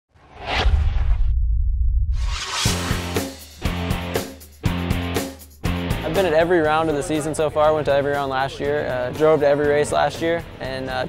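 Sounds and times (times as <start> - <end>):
deep rumble: 0.2 - 4.1
whoosh sound effect: 0.2 - 4.4.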